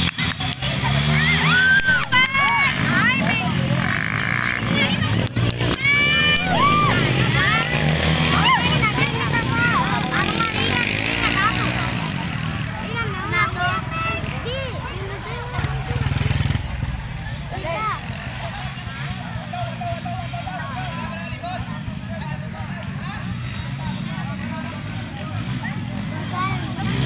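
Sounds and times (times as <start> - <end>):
spectators shouting: 0.0 - 22.6
dirt-bike engines running: 0.0 - 27.0.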